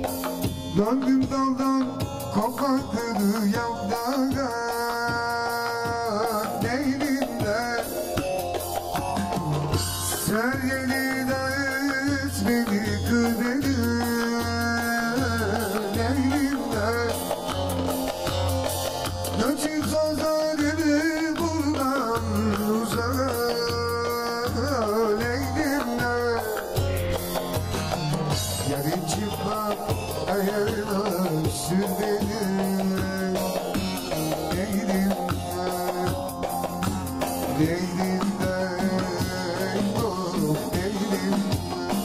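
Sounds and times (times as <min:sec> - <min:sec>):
folk dance tune on lute and keyboard: 0:00.0 - 0:42.0
hand drum beating: 0:00.0 - 0:42.0.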